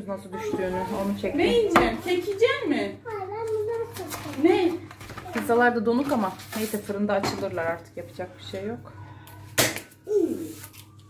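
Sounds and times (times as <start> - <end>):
baking paper rustling: 0.6 - 2.9, 3.6 - 7.7, 10.2 - 11.0.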